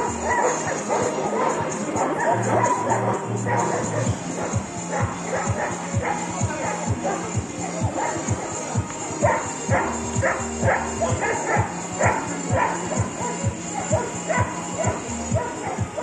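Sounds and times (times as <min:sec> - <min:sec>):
large dog barking: 0:00.0 - 0:16.0
music with steady beat: 0:00.0 - 0:16.0.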